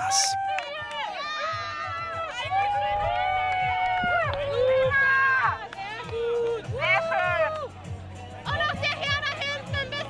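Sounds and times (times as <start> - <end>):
women cheering: 0.0 - 7.6.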